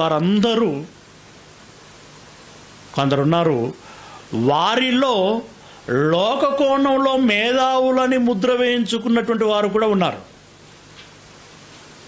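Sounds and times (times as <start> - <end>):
man speaking: 0.0 - 1.0, 2.9 - 10.3
faint steady hiss: 0.0 - 12.0.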